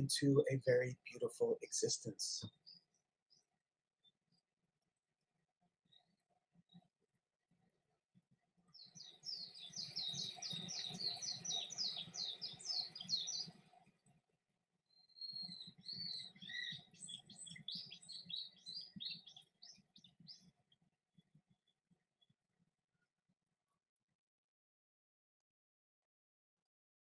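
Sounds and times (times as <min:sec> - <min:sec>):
songbird chirping: 0:00.0 - 0:03.4, 0:08.7 - 0:13.8, 0:14.9 - 0:20.6.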